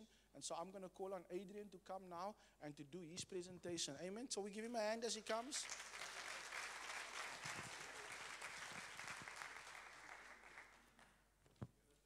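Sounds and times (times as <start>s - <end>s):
congregation applauding: 5.3s - 11.2s.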